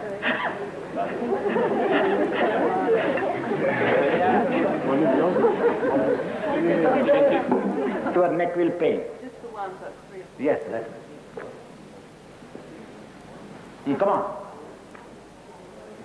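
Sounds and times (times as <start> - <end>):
overlapping chatter of voices: 0.0 - 16.0.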